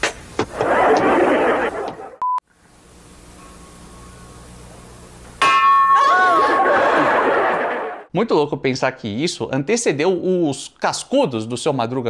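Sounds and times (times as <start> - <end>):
faint hum: 0.6 - 5.4
loud ringing bell clang: 5.4 - 6.1.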